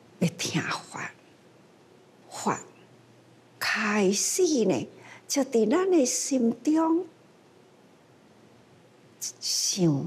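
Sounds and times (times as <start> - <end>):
elderly woman speaking softly: 0.2 - 1.2, 2.3 - 2.8, 3.6 - 7.1, 9.2 - 10.0.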